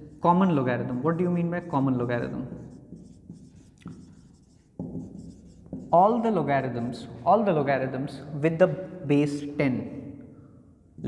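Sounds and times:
marker writing on whiteboard: 0:01.8 - 0:06.4.

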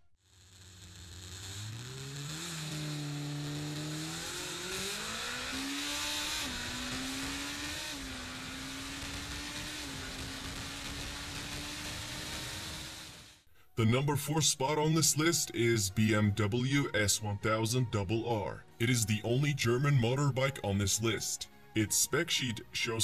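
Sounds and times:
motorcycle engine revving: 0:00.3 - 0:13.4.

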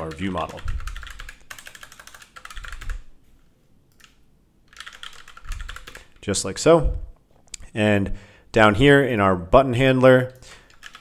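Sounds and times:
typing on computer keyboard: 0:00.0 - 0:03.1, 0:03.9 - 0:06.2, 0:10.6 - 0:11.0.

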